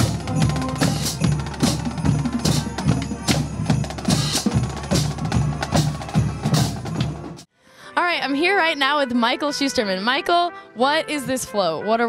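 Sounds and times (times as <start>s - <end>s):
bass drum: 0.0s - 7.4s
snare drum: 0.0s - 7.4s
brass instruments playing: 0.0s - 12.0s.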